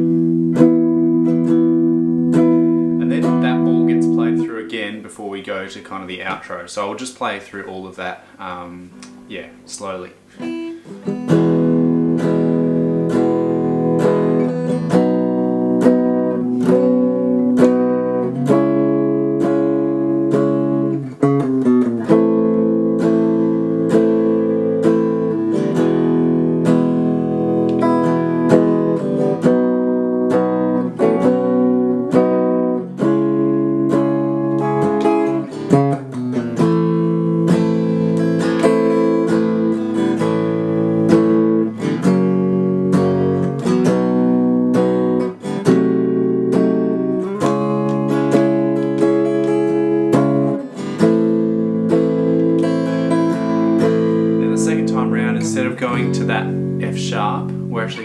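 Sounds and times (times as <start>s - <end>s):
electric guitar chords strummed: 0.0s - 4.7s, 10.4s - 58.0s.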